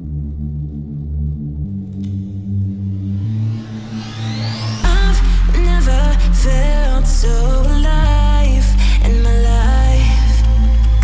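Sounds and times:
sustained synthesizer chords: 0.0s - 11.0s.

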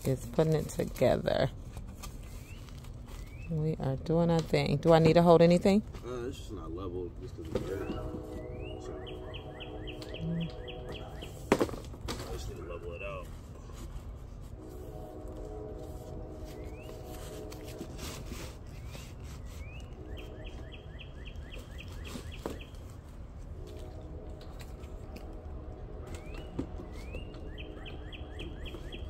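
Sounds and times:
songbird singing: 2.2s - 4.0s, 7.6s - 11.6s, 16.3s - 17.4s, 18.7s - 22.9s, 25.0s - 29.0s.

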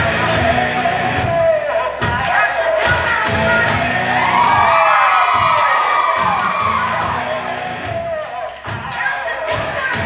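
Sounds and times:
stage music: 0.0s - 10.0s
audience cheering and whooping: 3.8s - 8.6s.

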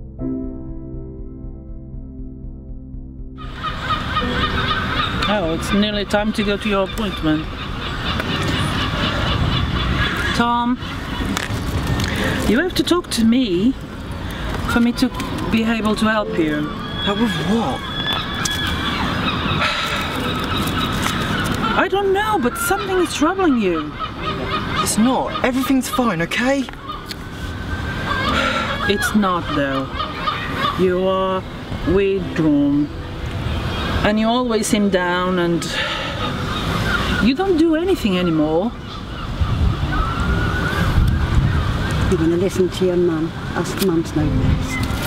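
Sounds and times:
faint calls: 3.4s - 11.3s, 14.3s - 32.6s, 35.6s - 43.6s
outdoor background noise: 3.4s - 45.0s
wind buffeting microphone: 3.5s - 45.0s.

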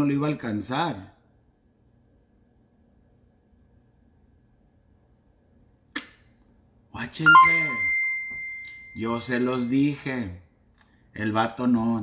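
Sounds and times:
single sharp click: 5.9s - 6.2s.

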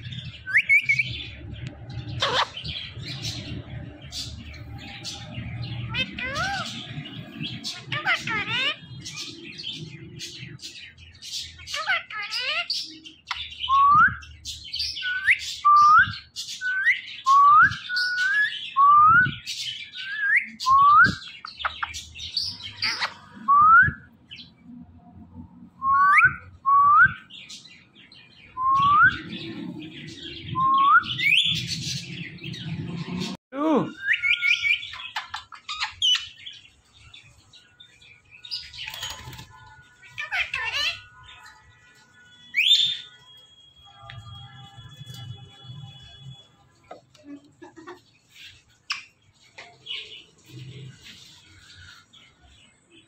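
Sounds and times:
parakeet calling: 2.0s - 13.8s, 19.8s - 23.5s, 34.0s - 36.7s, 38.4s - 47.1s.

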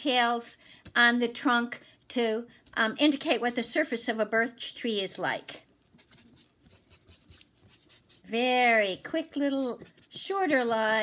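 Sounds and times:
marker scratching on paper: 5.9s - 11.0s.

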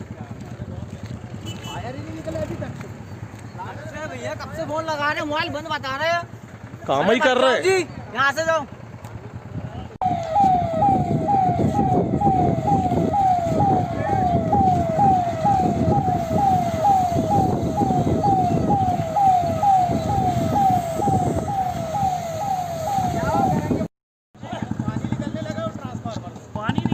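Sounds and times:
fire engine siren wailing: 10.0s - 23.9s
loud rumbling noise: 10.0s - 23.9s.

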